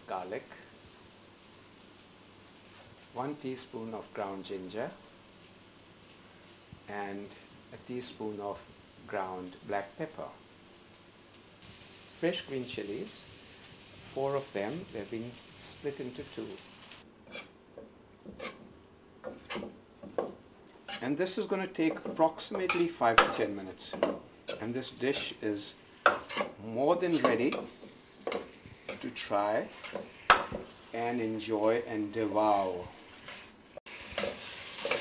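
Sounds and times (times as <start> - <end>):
food sizzling in a wok: 0.0 - 35.0
metal ladle scraping a wok: 17.3 - 17.5, 18.3 - 18.6, 26.0 - 26.6, 27.2 - 30.5, 33.1 - 35.0
metal ladle stirring and scraping: 17.3 - 17.5, 18.3 - 25.4, 26.0 - 30.8.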